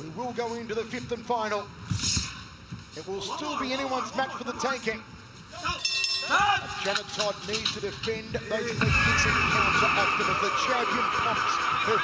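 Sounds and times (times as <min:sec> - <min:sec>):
man commentating: 0:06.6 - 0:12.0.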